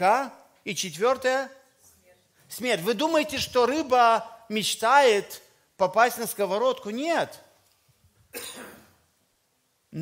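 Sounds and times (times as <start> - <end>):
short cough: 8.3 - 9.0.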